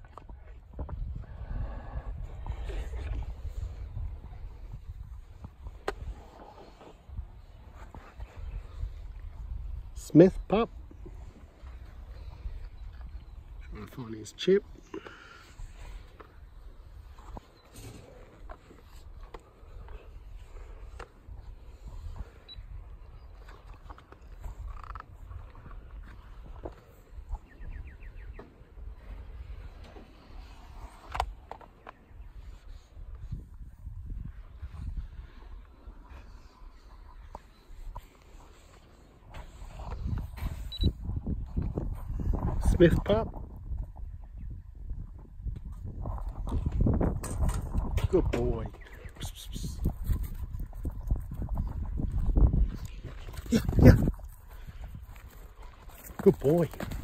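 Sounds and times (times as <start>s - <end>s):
footsteps on dry ground: 49.9s - 57.0s.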